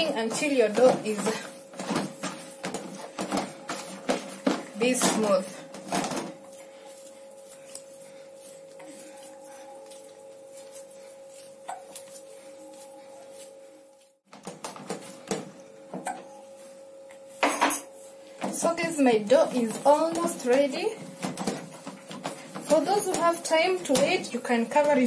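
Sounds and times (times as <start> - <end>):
dough slapping against basin: 0.0 - 6.6, 18.4 - 25.0
faint hum: 0.0 - 14.2.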